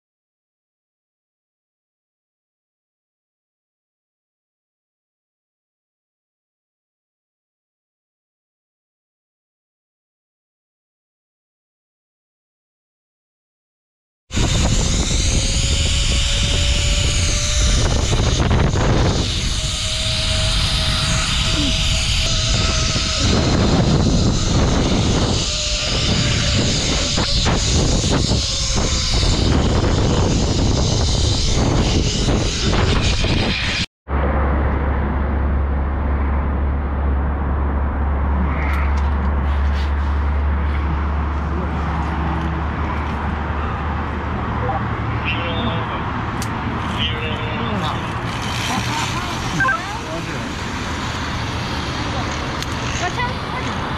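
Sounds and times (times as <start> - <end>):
zipline trolley whirring on cable: 14.3 - 35.2, 37.7 - 53.9
wind rushing over microphone: 14.3 - 45.3
low rumble: 14.4 - 44.3.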